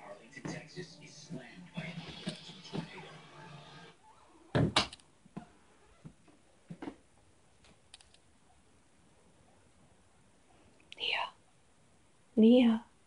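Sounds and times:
person whispering: 10.9s - 11.4s.

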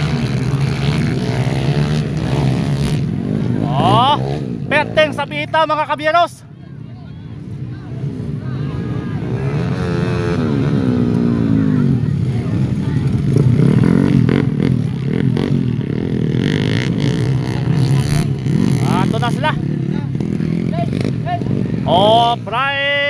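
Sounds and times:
dirt bike engines revving: 0.0s - 23.0s.

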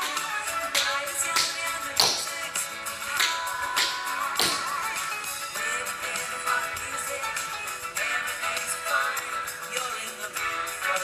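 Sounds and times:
pop song with singing: 0.0s - 11.0s.

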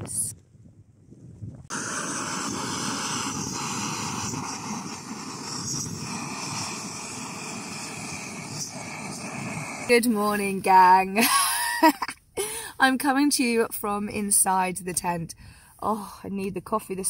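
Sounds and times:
camping stove hissing: 1.7s - 10.9s.

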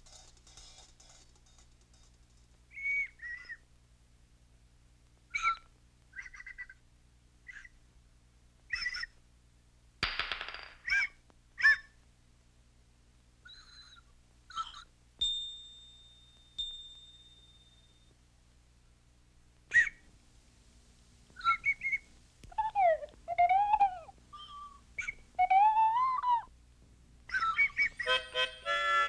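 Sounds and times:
squeaky whistled cartoon chirps: 2.7s - 3.6s, 5.3s - 6.8s, 8.7s - 9.1s, 13.5s - 14.8s, 19.7s - 20.0s, 21.4s - 22.8s, 27.3s - 28.4s
ringing ding: 15.2s - 18.1s.

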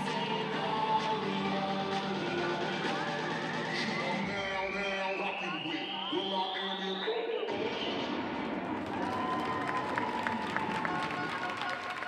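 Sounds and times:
crowd cheering and clapping: 8.4s - 12.0s.

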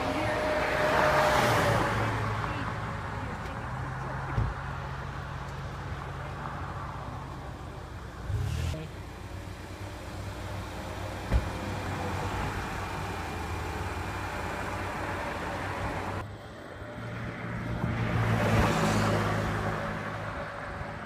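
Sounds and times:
road traffic noise: 0.0s - 21.0s.

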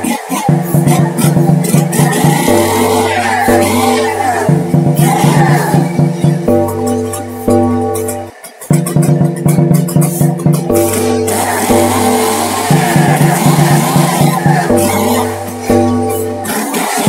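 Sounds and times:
electronic music with deep bass: 0.0s - 17.0s.

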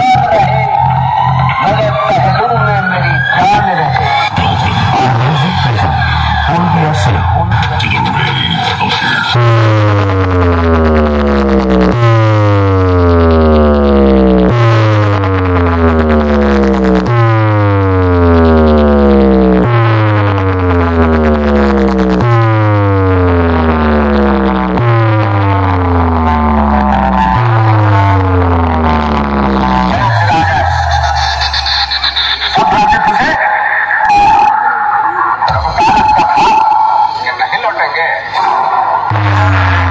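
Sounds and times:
tone sweeping down into bass: 0.0s - 37.4s, 38.4s - 39.9s.

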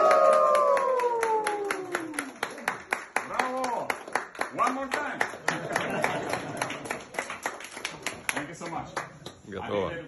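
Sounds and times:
people cheering: 0.0s - 3.9s
steady clapping: 0.0s - 9.5s.

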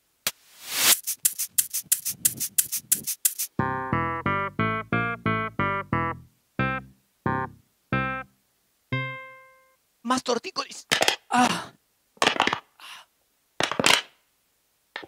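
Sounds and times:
sharp percussive clicks: 0.9s - 3.6s
staccato keyboard chords: 1.3s - 9.8s.

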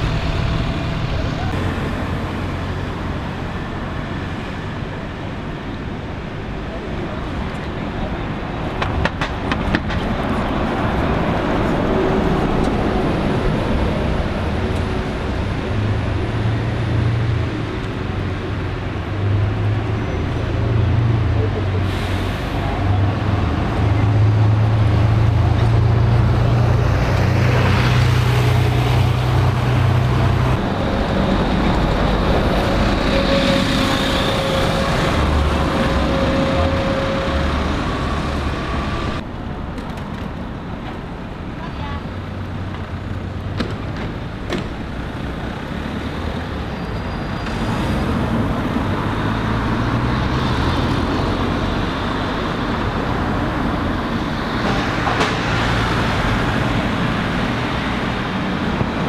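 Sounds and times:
bus engine hum: 0.0s - 59.0s
city road traffic: 0.0s - 59.0s.

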